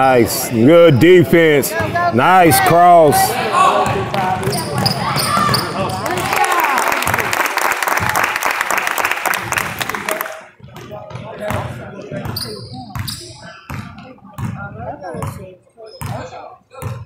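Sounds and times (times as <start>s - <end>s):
spectators' voices: 0.0s - 8.4s.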